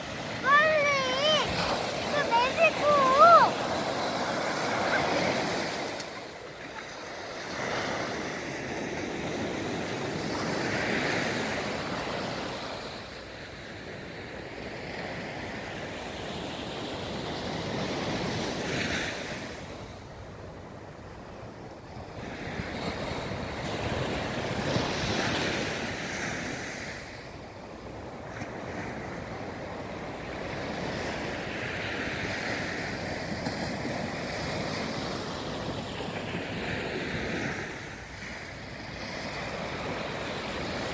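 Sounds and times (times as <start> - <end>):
small waves breaking on beach: 0.0 - 40.9.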